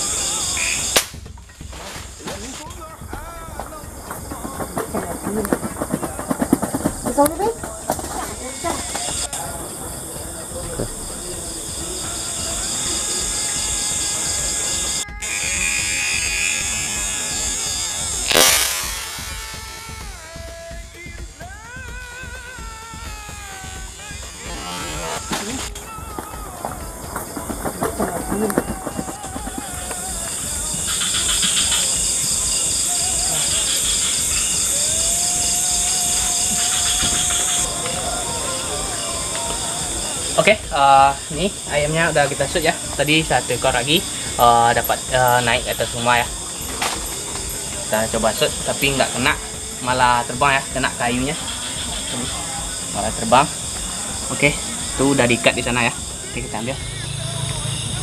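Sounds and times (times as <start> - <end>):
crickets chirping: 0.0 - 58.0
night insects buzzing: 0.0 - 58.0
loud rush of noise: 12.6 - 20.6.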